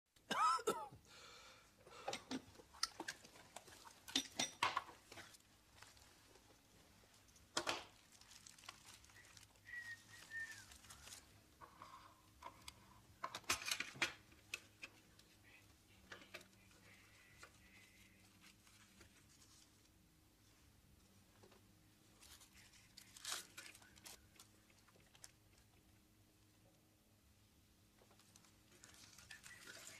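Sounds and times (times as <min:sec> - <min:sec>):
paper rustling: 0:04.9 - 0:12.6, 0:16.3 - 0:20.0, 0:22.1 - 0:25.4, 0:28.0 - 0:29.9.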